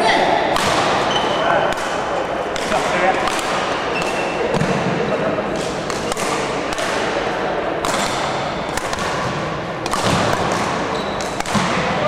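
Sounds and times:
badminton racket hitting shuttlecock: 0:01.7 - 0:04.8, 0:05.5 - 0:07.1, 0:07.8 - 0:11.8.

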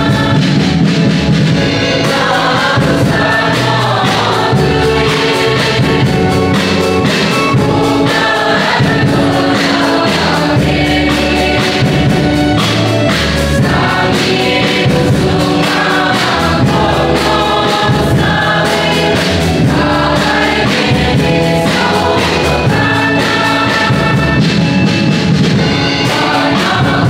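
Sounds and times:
mixed choir singing: 0:00.0 - 0:27.0.

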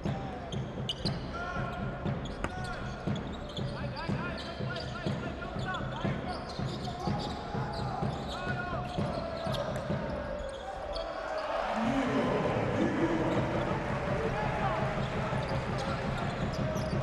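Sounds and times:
arena crowd noise: 0:00.0 - 0:17.0
sneaker squeaks: 0:00.5 - 0:01.3, 0:02.2 - 0:11.6, 0:15.4 - 0:17.0.

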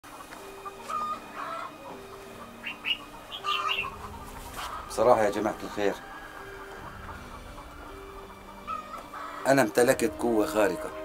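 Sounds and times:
chickens clucking: 0:00.0 - 0:11.0.

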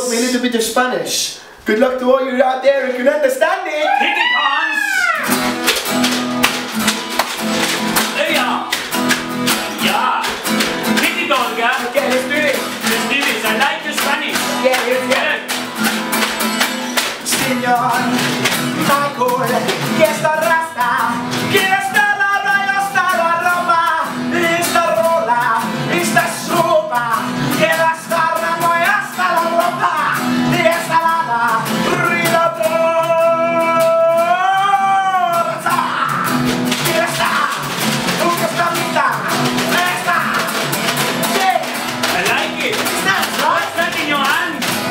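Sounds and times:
acoustic guitar strummed: 0:04.8 - 0:44.9
man singing: 0:07.6 - 0:09.0, 0:09.6 - 0:15.6, 0:17.0 - 0:44.9.

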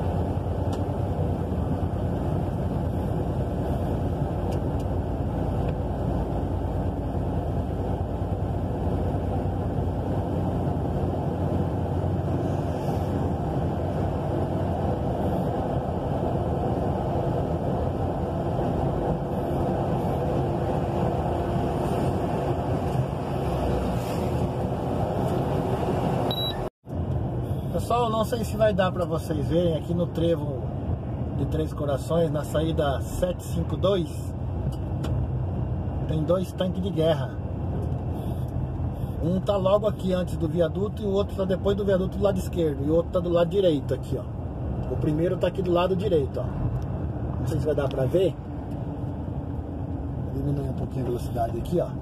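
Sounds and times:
truck engine drone: 0:00.0 - 0:28.1
road noise: 0:00.0 - 0:52.0.

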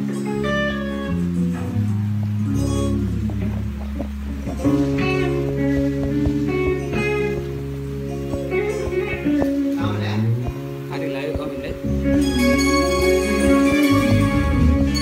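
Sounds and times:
electric guitars playing chords: 0:00.0 - 0:15.0
sustained bass notes: 0:00.0 - 0:15.0.

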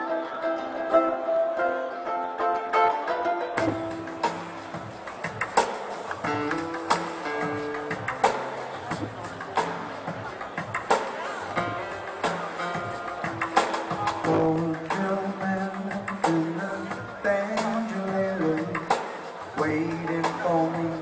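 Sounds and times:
banjolele melody: 0:00.0 - 0:21.0
bass and drums: 0:03.6 - 0:21.0.

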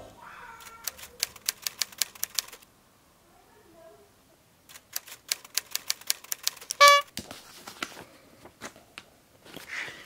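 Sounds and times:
typewriter keys clacking: 0:00.8 - 0:02.6, 0:04.7 - 0:06.8.

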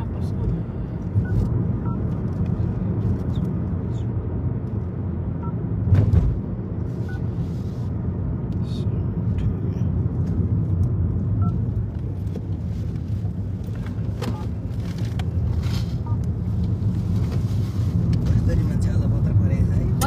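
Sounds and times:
road and engine noise in car: 0:00.0 - 0:20.0.

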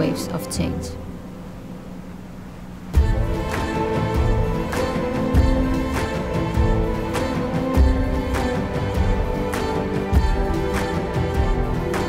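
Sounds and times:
soft ambient hiss: 0:00.0 - 0:12.0.

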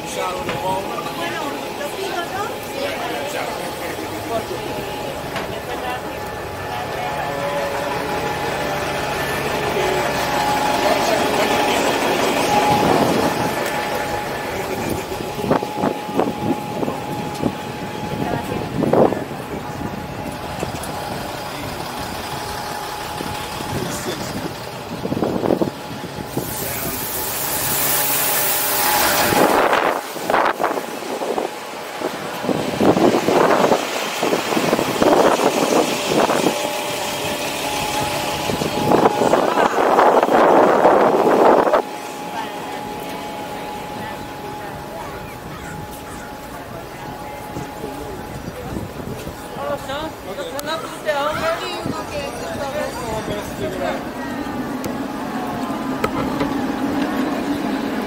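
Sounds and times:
bus engine running: 0:00.0 - 0:58.0
people talking: 0:00.0 - 0:58.0
loud hissing rush: 0:20.4 - 0:45.2.

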